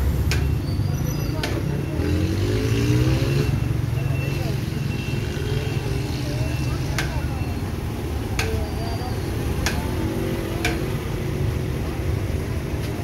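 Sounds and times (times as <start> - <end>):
crowd voices: 0.0 - 13.0
traffic engine rumble: 0.0 - 13.0.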